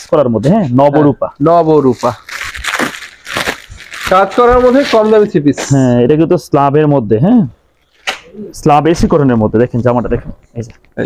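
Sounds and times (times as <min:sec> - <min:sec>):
plastic packaging crinkling: 0:01.6 - 0:05.4.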